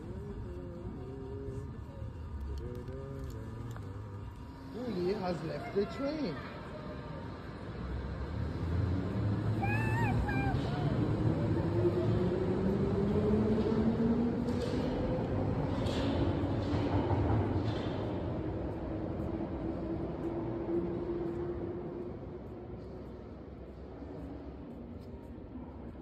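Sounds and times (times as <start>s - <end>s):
train rumble: 0.0s - 26.0s.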